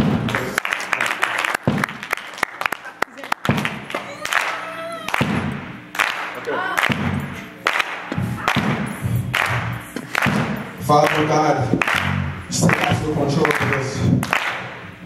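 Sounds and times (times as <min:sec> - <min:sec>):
loud regular beats: 0:00.0 - 0:00.6, 0:01.4 - 0:02.3, 0:03.3 - 0:15.0
congregation clapping and cheering: 0:00.0 - 0:15.0
music: 0:03.5 - 0:15.0.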